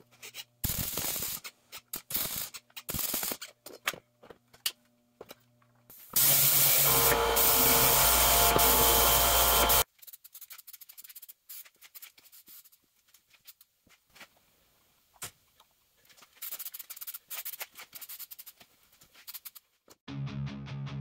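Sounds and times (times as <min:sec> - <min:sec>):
welding crackling: 0:00.6 - 0:03.4, 0:06.2 - 0:09.9
orbital sander on steel: 0:06.2 - 0:09.8.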